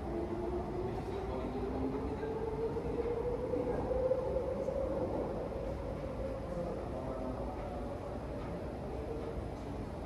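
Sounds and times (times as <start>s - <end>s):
metro train whining and rumbling: 0.0s - 10.0s.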